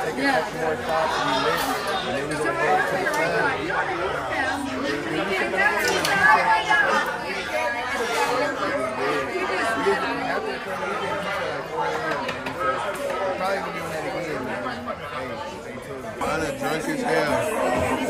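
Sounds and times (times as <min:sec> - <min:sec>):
people chattering: 0:00.0 - 0:18.0.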